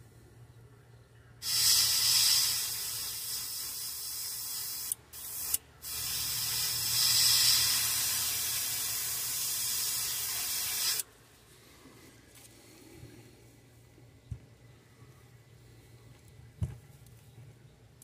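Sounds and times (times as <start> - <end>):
airbrush spraying hiss: 1.4 - 11.1.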